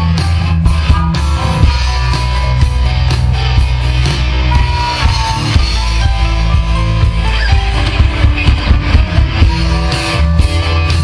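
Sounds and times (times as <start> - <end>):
live band playing amplified music: 0.0 - 11.0
steady drum beat: 0.0 - 11.0.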